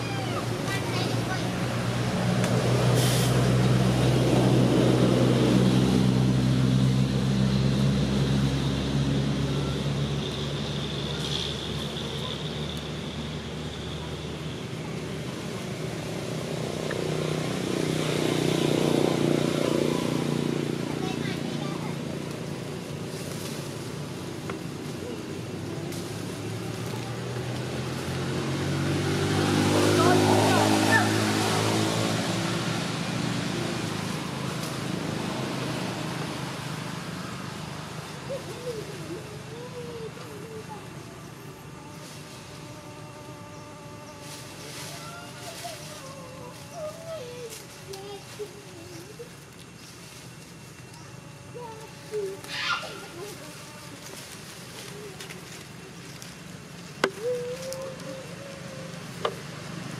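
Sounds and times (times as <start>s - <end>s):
engine humming: 0.0s - 59.9s
short hiss: 3.0s - 3.4s.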